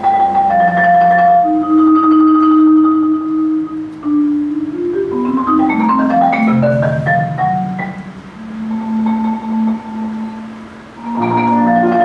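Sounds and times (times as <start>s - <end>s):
marimba low rolled note: 0.0s - 12.0s.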